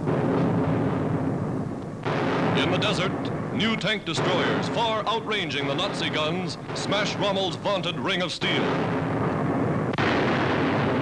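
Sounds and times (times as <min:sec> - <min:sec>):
artillery fire and shell bursts: 0:00.0 - 0:11.0.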